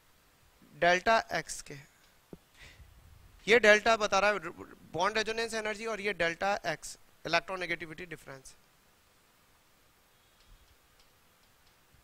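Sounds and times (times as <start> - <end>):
chalk ticking on chalkboard: 10.3 - 12.0.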